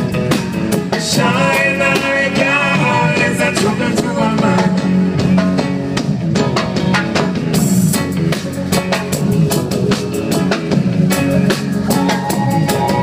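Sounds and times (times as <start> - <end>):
live reggae band playing: 0.0 - 13.0.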